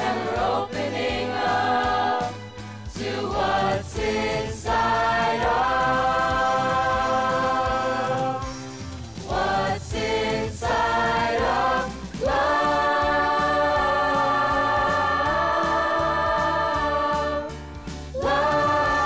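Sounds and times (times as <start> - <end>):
choir singing in harmony: 0.0 - 19.0.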